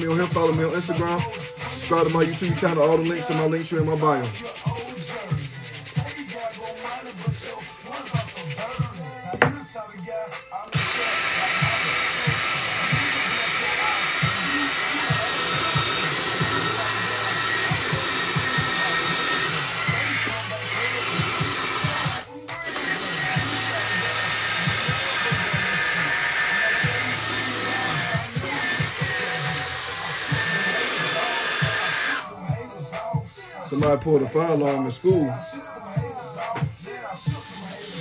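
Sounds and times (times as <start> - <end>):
brush scrubbing fabric: 1.1 - 8.9
cordless drill motor whirring: 10.7 - 32.3.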